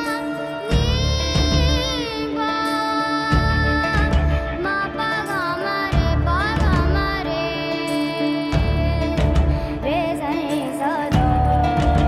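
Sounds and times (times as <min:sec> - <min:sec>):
girl singing ornamented melody: 0:00.0 - 0:12.0.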